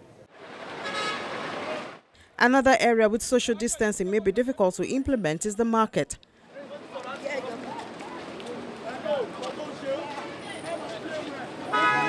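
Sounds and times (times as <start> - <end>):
car horn toot: 0.8 - 1.2, 11.7 - 12.0
crowd chatter: 6.5 - 12.0.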